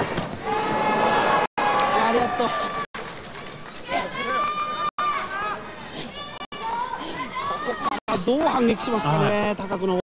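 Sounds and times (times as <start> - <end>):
arena background noise: 0.0 - 10.0.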